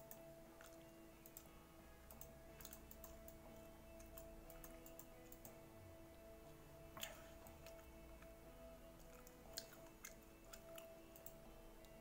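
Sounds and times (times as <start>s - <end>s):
computer mouse clicks: 0.0s - 1.5s, 2.1s - 3.4s, 4.0s - 5.6s, 9.0s - 12.0s
faint music of held tones: 0.0s - 12.0s.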